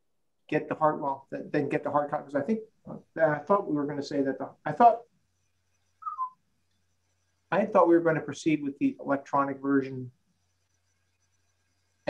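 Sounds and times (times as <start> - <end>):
whistle-like tone falling in pitch: 6.0 - 6.3.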